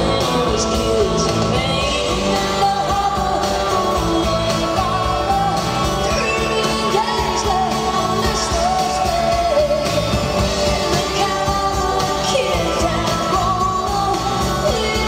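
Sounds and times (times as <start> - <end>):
electric guitar bass and drums: 0.0 - 15.0
woman singing: 0.0 - 15.0.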